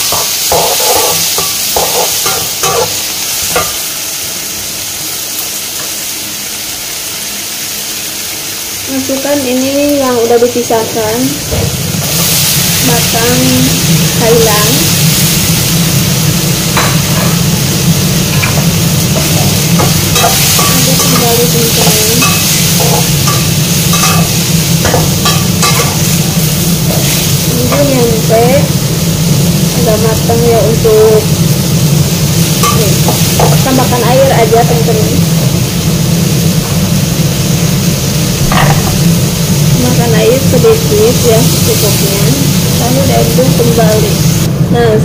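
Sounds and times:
low kitchen drone: 0:00.0 - 0:45.0
stir-fry sizzling in a wok: 0:00.0 - 0:45.0.

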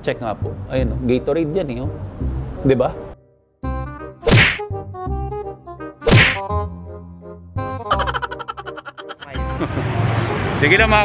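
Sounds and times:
sharp whack hits: 0:04.2 - 0:04.6, 0:06.0 - 0:06.4.

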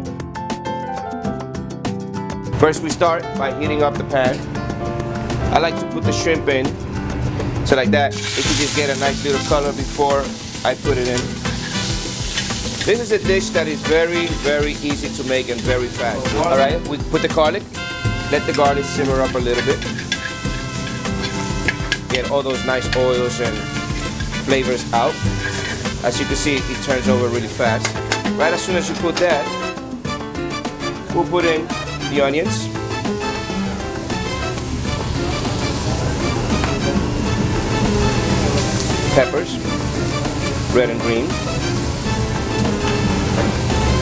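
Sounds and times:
background music: 0:00.0 - 0:44.0
shrimp sizzling in a pan: 0:08.1 - 0:29.5, 0:32.5 - 0:44.0
metal tongs stirring: 0:08.1 - 0:29.7.

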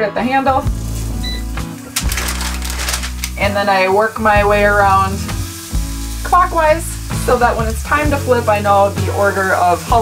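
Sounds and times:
background music: 0:00.0 - 0:10.0
sausage sizzling in a skillet: 0:00.2 - 0:10.0.

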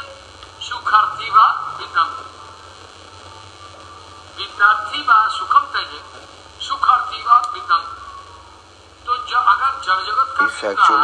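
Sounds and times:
low mains hum: 0:00.0 - 0:11.0
man's voice: 0:10.4 - 0:11.0.

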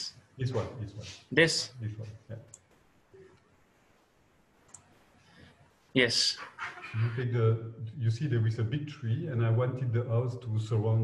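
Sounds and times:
computer mouse clicks: 0:04.6 - 0:04.9.

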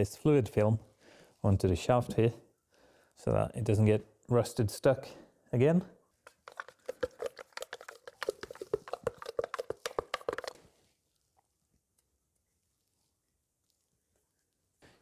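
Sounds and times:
wet sticky clicks and crackles: 0:06.2 - 0:10.7.

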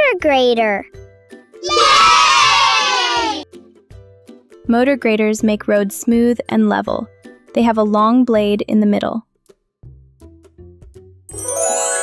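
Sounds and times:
children cheering: 0:01.6 - 0:03.4.

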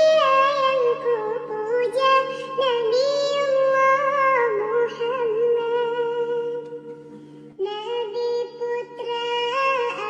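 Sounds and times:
high-pitched voice singing: 0:00.0 - 0:06.8, 0:07.6 - 0:10.0.

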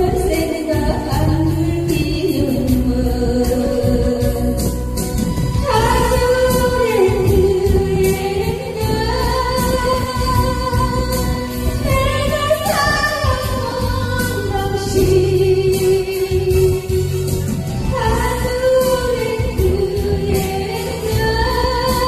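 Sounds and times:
backing music: 0:00.0 - 0:22.0
woman singing into a microphone: 0:00.0 - 0:22.0.

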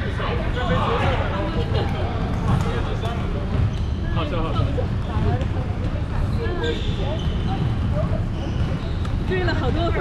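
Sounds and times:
faint players' voices: 0:00.0 - 0:10.0.

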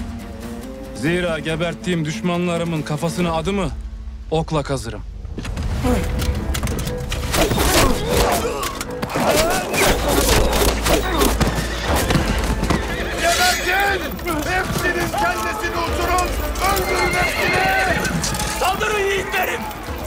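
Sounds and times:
hooves clattering: 0:06.0 - 0:20.0
horses neighing: 0:07.3 - 0:19.9
men shouting: 0:07.3 - 0:20.0.

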